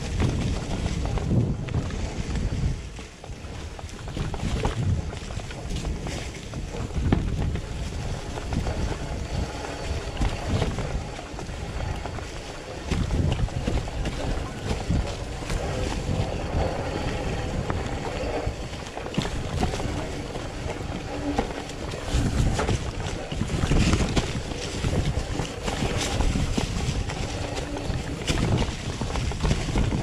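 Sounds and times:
bike rattling over bumps: 0.0s - 30.0s
tyres rolling over dirt and leaves: 0.0s - 30.0s
wind rumbling on microphone: 0.0s - 30.0s.

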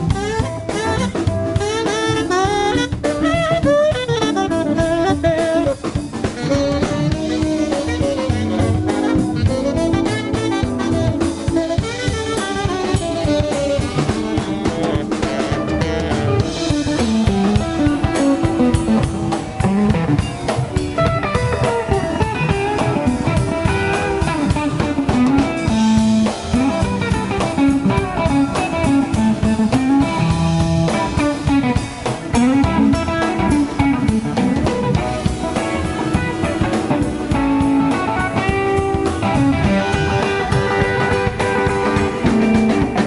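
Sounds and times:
blues band playing: 0.0s - 43.0s
electric guitar lines: 0.0s - 43.0s.

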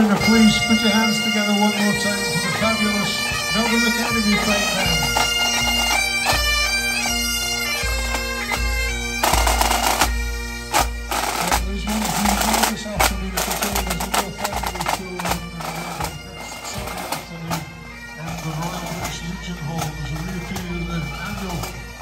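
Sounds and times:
bagpipes: 0.0s - 22.0s.

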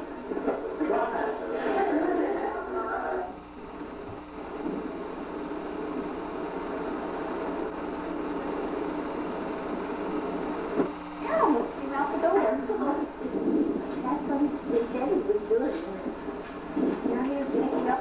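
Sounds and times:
faint steady tones: 0.0s - 18.0s
low mechanical hum: 0.0s - 18.0s.

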